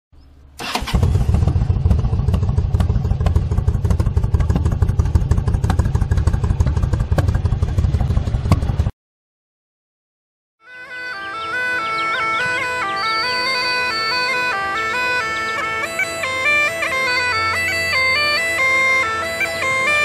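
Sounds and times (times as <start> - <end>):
motorcycle engine starting and running: 0.2 - 8.9, 11.4 - 20.0.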